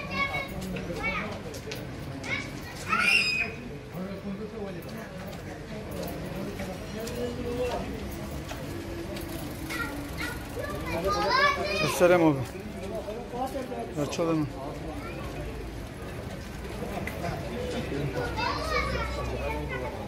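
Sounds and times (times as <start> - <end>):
children shouting and calling: 0.0 - 4.1, 7.0 - 20.0
overlapping talk: 9.2 - 13.3.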